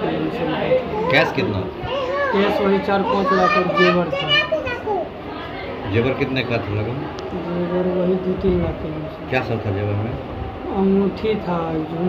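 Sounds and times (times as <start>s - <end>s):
children chattering: 0.0s - 9.4s
man talking: 0.8s - 4.6s.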